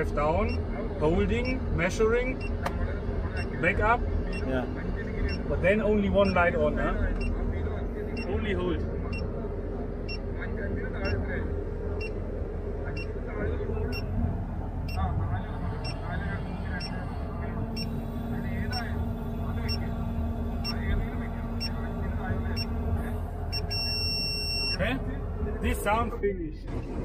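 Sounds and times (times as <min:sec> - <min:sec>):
crane engine running low: 0:00.0 - 0:27.0.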